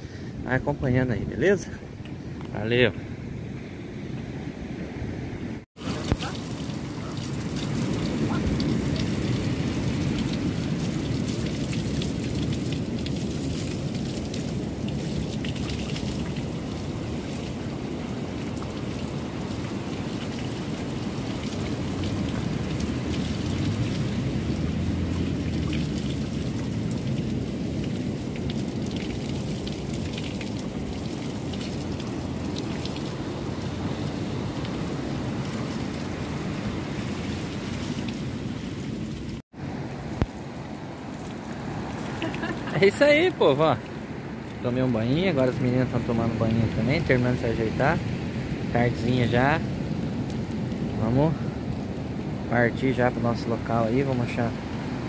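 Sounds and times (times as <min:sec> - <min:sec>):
shower water splashing: 0:05.8 - 0:39.4, 0:41.2 - 0:44.0.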